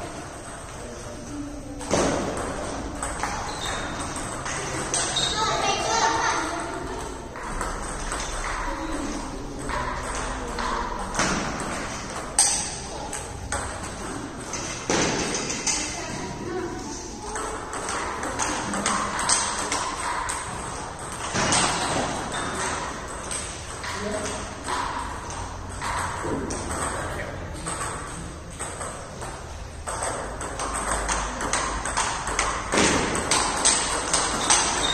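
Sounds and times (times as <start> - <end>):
voices talking in a hall: 0.0 - 34.9
table tennis ball clicking: 17.3 - 34.9.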